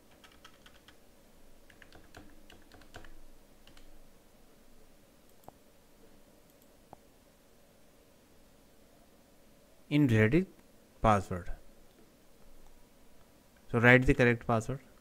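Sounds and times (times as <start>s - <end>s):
typing on keyboard: 0.1s - 1.0s, 1.7s - 3.9s.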